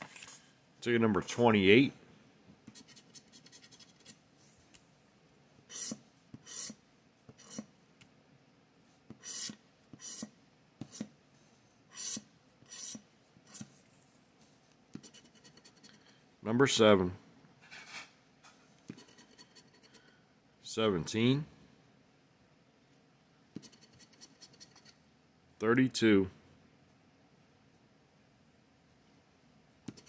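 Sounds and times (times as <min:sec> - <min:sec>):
scratching lottery ticket: 0:02.7 - 0:04.2, 0:15.0 - 0:16.0, 0:18.9 - 0:20.1.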